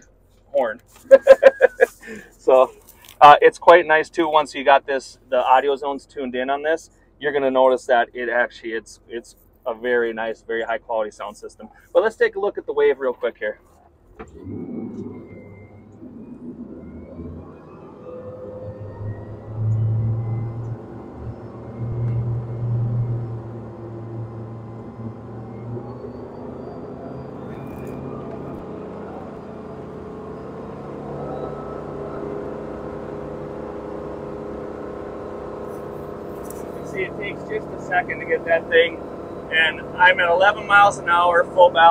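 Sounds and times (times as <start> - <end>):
boat engine: 0.0 - 41.9.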